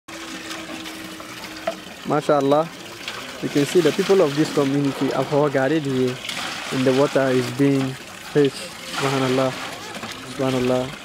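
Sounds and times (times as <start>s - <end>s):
water splashing into metal basin: 0.1s - 11.0s.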